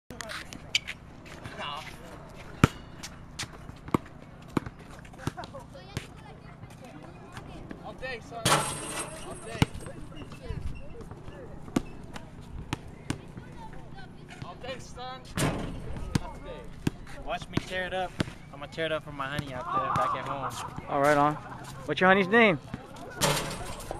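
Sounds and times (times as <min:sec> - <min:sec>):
basketball bouncing on hard court: 0:03.7 - 0:05.4.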